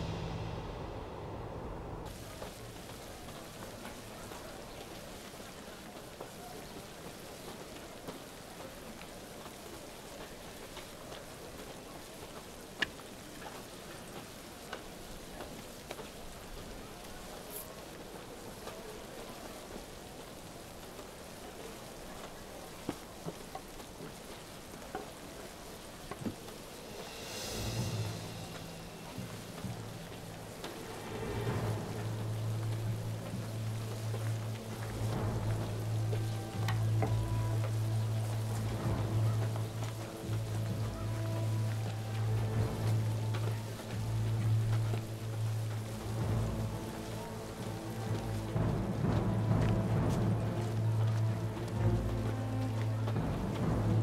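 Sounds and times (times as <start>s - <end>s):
market street bustle: 0.0s - 54.0s.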